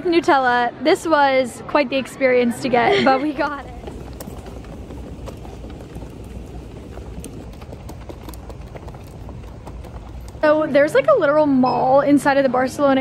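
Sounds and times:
footsteps: 2.8s - 11.2s
suitcase rolling over tiles: 3.3s - 11.0s.

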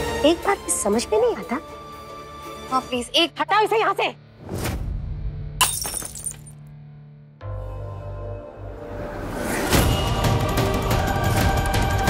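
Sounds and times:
background music: 0.0s - 12.0s
dish crashing and shattering: 5.6s - 6.5s.

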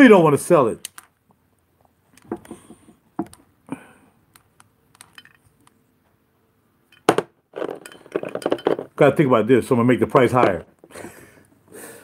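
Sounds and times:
glass bottle clicking and rubbing: 6.9s - 9.0s.

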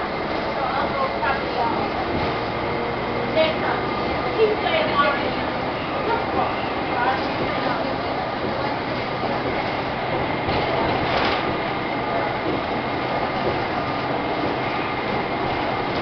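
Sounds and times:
bus engine and road noise: 0.0s - 16.0s.

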